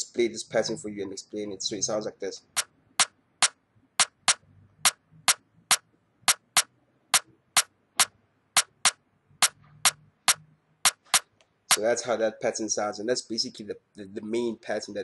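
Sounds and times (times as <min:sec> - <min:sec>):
percussion loop of sharp clicks: 0:02.5 - 0:11.9.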